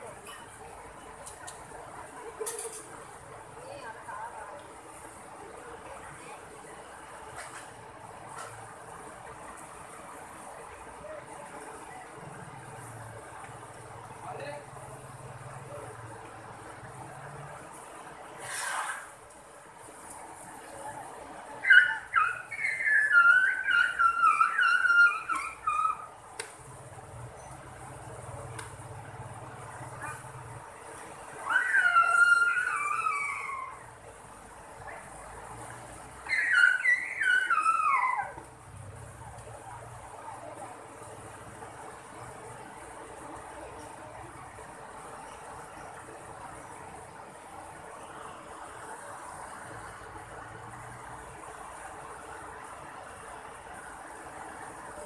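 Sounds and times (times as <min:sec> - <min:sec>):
high-pitched falling calls: 0:21.6 - 0:26.1, 0:31.4 - 0:33.9, 0:36.2 - 0:38.4.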